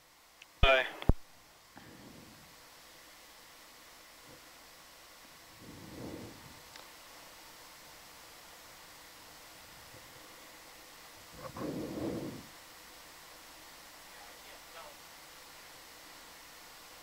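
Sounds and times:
communications line hiss: 0:00.0 - 0:17.0
muffled puffs on microphone: 0:01.8 - 0:02.6, 0:05.4 - 0:06.7, 0:11.2 - 0:12.6.

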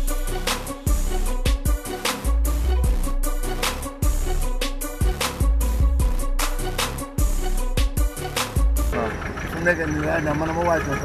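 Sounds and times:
low engine hum: 0:08.6 - 0:11.0
man talking: 0:08.9 - 0:11.0.

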